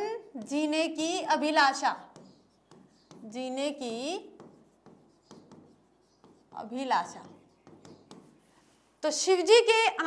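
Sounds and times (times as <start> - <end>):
writing strokes on a board: 0.0 - 9.0.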